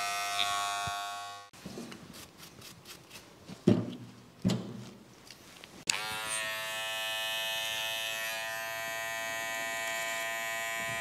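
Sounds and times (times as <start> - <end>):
electric hair clipper buzzing: 0.0 - 1.5, 5.9 - 11.0.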